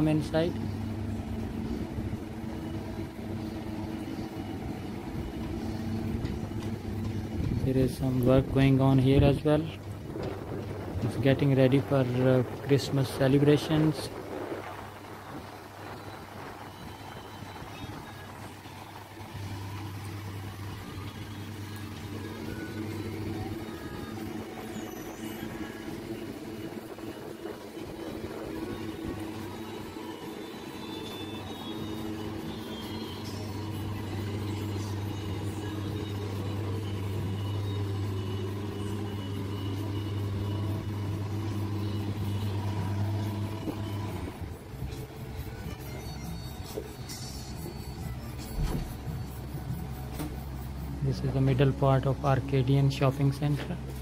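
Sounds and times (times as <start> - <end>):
engine humming: 0.0 - 54.0.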